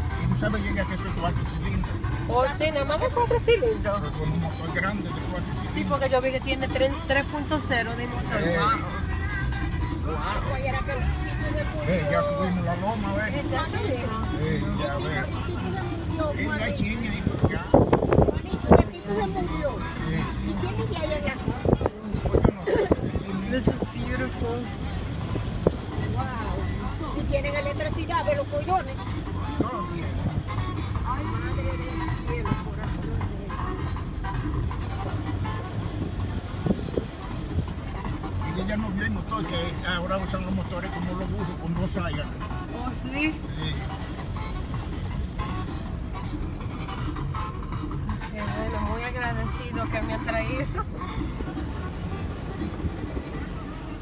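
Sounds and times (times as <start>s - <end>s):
engine rumble inside cab: 0.0s - 54.0s
music: 0.0s - 54.0s
tyres on dirt road: 0.0s - 54.0s
voices: 0.0s - 54.0s.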